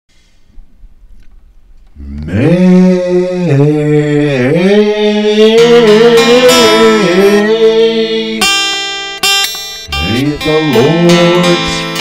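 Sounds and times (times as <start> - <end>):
person chanting long notes: 2.0 - 8.6, 9.8 - 12.0.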